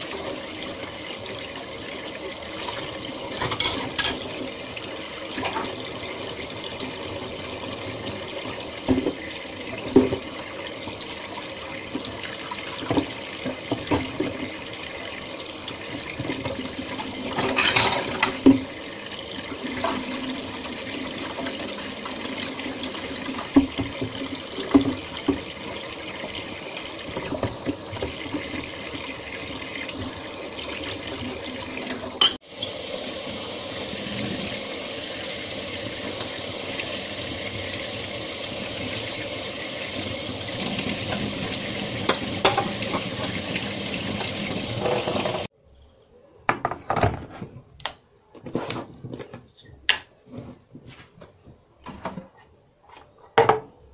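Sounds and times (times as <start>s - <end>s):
tap running into a sink: 8.8s - 10.4s, 11.9s - 14.6s, 23.3s - 26.4s, 27.0s - 29.1s, 40.4s - 45.5s.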